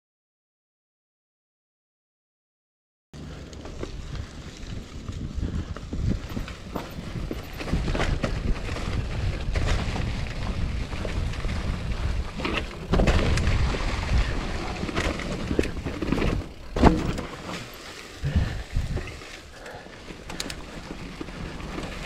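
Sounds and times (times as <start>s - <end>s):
bike knocking and rattling: 3.2s - 22.0s
bike tyres rolling through leaves: 3.2s - 22.0s
wind buffeting microphone: 3.3s - 17.2s, 18.2s - 19.7s.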